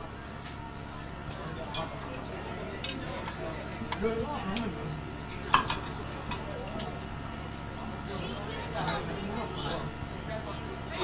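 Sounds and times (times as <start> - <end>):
faint voices: 0.0 - 11.0
steady low hum: 0.0 - 11.0.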